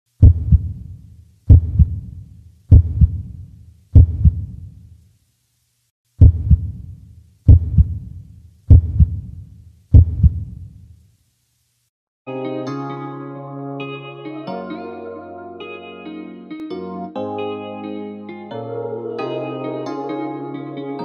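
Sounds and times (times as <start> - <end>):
heartbeat double thumps: 0.2 - 0.9, 1.5 - 4.6, 6.2 - 6.9, 7.5 - 10.7.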